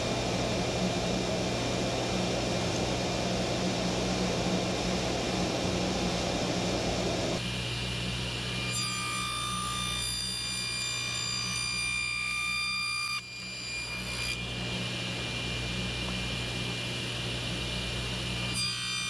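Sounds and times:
high steady saw whine: 0.0 - 19.0
table saw motor hum: 0.0 - 19.0.

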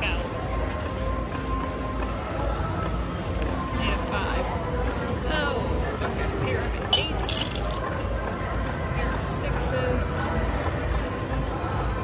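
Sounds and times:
background chatter: 0.0 - 12.0
background music: 0.0 - 12.0
sharp clinks: 6.9 - 8.0.

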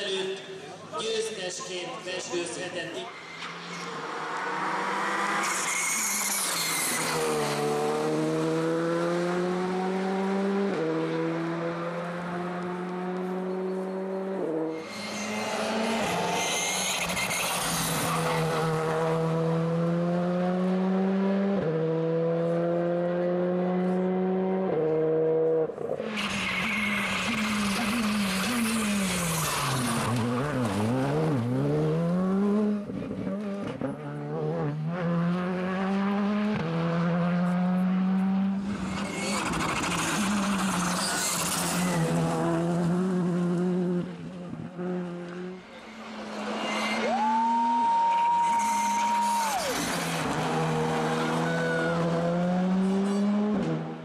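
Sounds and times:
rally car engine revving: 3.4 - 47.6, 48.8 - 54.0.

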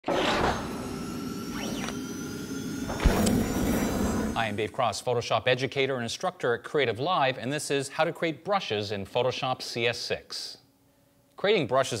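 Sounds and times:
low hit: 2.9 - 4.4.

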